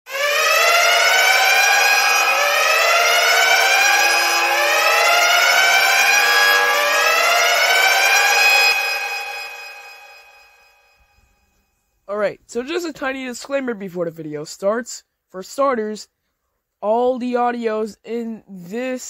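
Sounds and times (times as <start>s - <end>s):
siren-like wailing: 0.1s - 11.1s.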